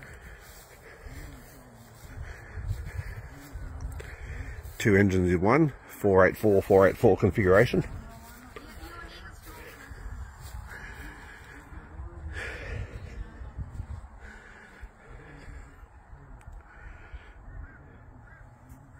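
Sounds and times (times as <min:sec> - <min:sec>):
distant bird calls: 0:00.0 - 0:04.8, 0:14.0 - 0:18.9
wind rumble on microphone: 0:00.0 - 0:04.8, 0:07.6 - 0:18.9.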